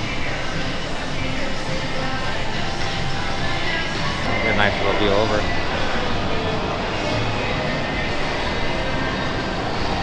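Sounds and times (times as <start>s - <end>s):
shopping mall ambience roar: 0.0s - 10.0s.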